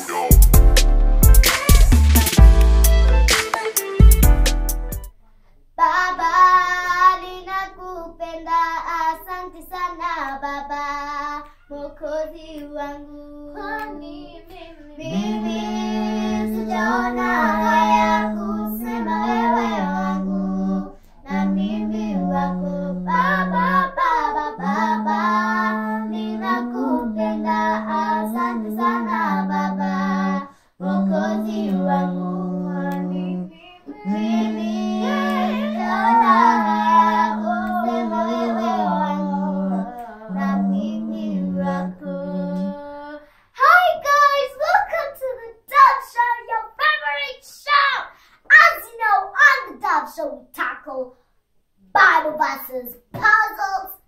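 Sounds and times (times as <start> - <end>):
girls singing together: 5.8 - 43.3.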